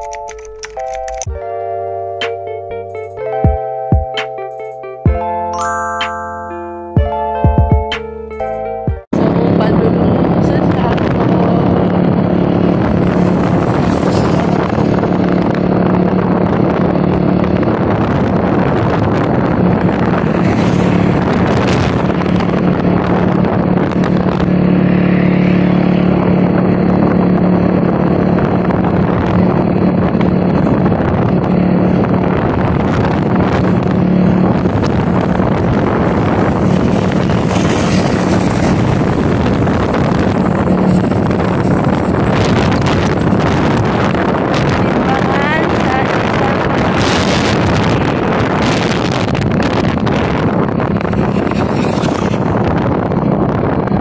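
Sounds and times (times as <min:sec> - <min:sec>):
vehicle engine running: 0:09.1 - 0:54.0
wind buffeting microphone: 0:09.1 - 0:54.0.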